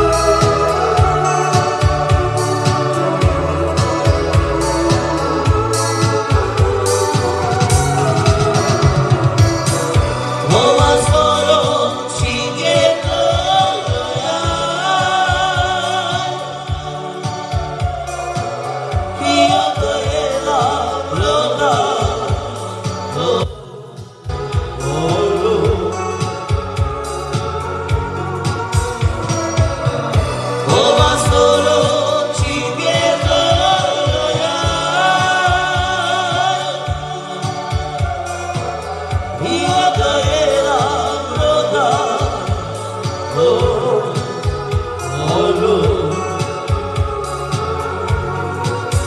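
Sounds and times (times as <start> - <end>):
keyboard backing with bass: 0.0 - 49.0
man singing: 0.0 - 49.0.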